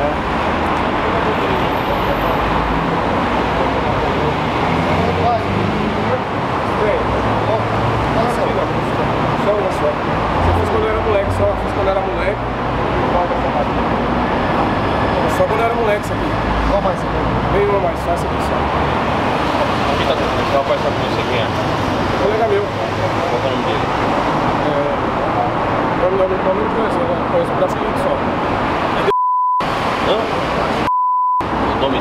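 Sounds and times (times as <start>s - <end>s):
low talk: 0.0s - 14.0s
highway traffic noise: 0.0s - 32.0s.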